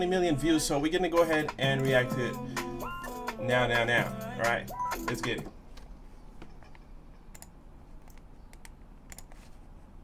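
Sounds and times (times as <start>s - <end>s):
low background hum: 0.0s - 10.0s
computer keyboard typing: 7.3s - 9.4s.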